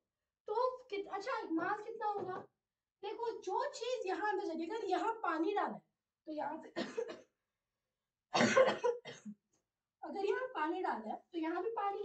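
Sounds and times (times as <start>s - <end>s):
woman coughing: 6.7s - 7.3s, 8.4s - 9.4s.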